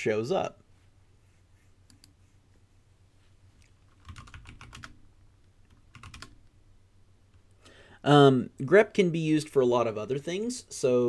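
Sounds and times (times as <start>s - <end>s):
typing on computer keyboard: 3.9s - 5.0s, 5.7s - 6.4s.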